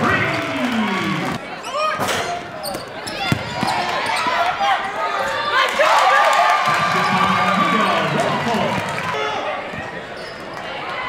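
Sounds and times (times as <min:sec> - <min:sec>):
basketball bouncing on gym floor: 0:02.7 - 0:03.8.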